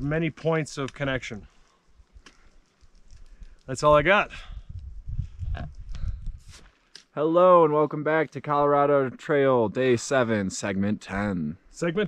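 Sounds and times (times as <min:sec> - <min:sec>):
faint rustles: 0:01.4 - 0:03.8
wind buffeting microphone: 0:03.8 - 0:06.6.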